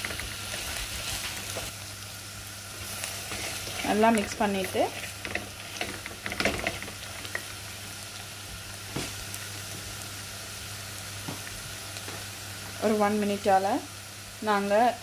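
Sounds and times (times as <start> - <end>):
vegetables sizzling in oil: 0.0 - 15.0
wooden spoon scraping a pot: 3.1 - 7.5.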